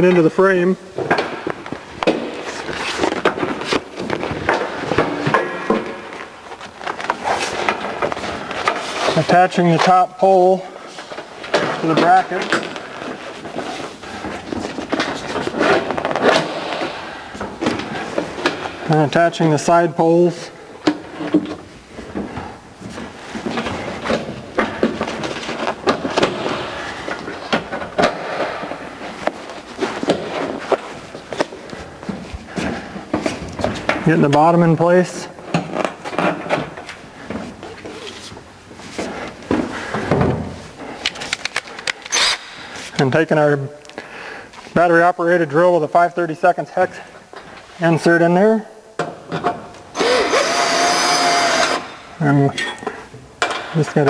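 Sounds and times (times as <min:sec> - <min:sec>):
rustling scrape: 0:02.4 - 0:05.2, 0:06.2 - 0:09.8, 0:10.8 - 0:17.1.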